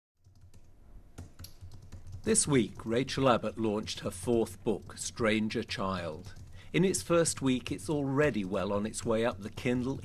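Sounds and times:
keyboard key taps: 1.2 - 3.0.

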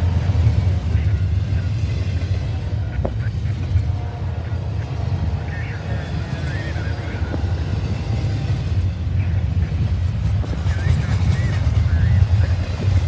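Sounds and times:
rumble of steel wheels on rail: 0.0 - 13.0.

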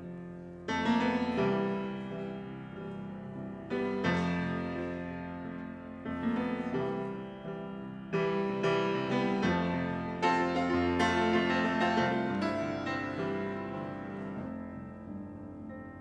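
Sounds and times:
solo piano playing: 0.0 - 16.0.

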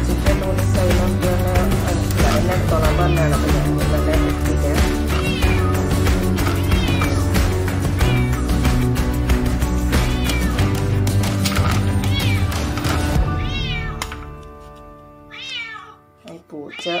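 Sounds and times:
music with heavy beat: 0.3 - 13.7
cat meowing: 5.0 - 8.6, 10.0 - 10.7, 12.1 - 12.5, 13.2 - 14.1, 15.3 - 16.0, 16.7 - 17.0.

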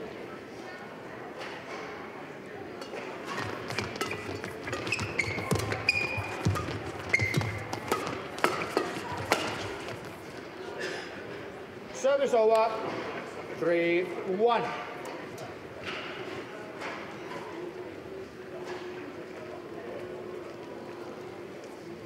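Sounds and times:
racket hitting shuttlecock: 3.2 - 10.2
shoes squeaking on court: 3.2 - 10.6.

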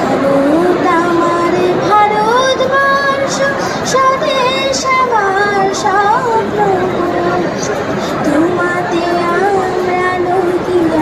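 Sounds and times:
girl singing into microphone: 0.0 - 11.0.

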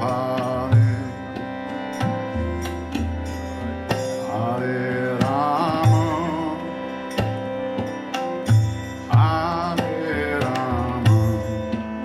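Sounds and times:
person singing a chant: 0.0 - 1.8, 4.2 - 7.5, 9.1 - 12.0
harmonium chords: 0.0 - 12.0
tabla strokes: 0.0 - 12.0.

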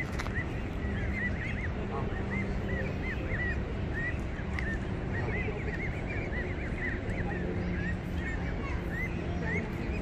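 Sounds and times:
goslings peeping: 0.0 - 10.0.

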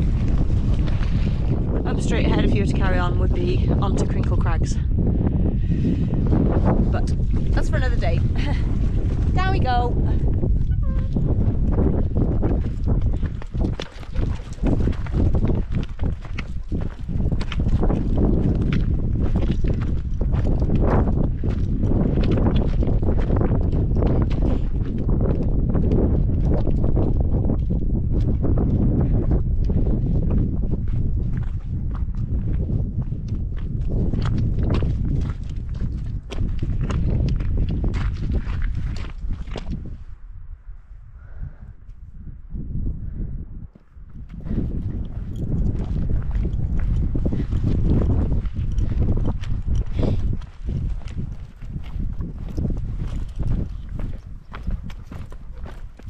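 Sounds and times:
wind rumble on microphone: 0.0 - 56.0
boots and poles on stones: 11.1 - 30.6, 31.3 - 39.8, 44.2 - 56.0.

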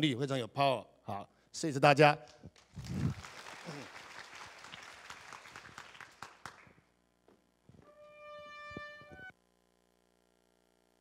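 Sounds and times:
audience applause: 2.7 - 6.8
trumpet sustained note: 7.8 - 9.3.

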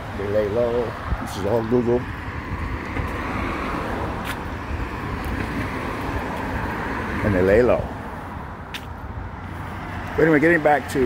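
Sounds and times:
passing cars traffic: 0.0 - 11.0.

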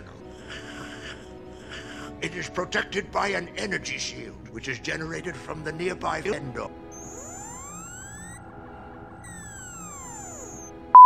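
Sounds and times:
synthetic tones gliding upward: 7.0 - 8.4, 9.2 - 10.7
low electronic hum: 7.0 - 8.5, 9.1 - 10.7.

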